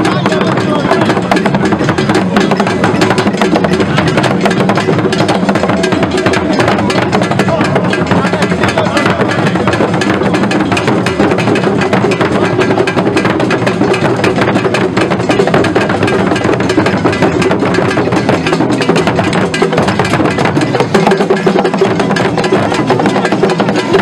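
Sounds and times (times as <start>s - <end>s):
barrel drums beaten with sticks: 0.0s - 24.0s.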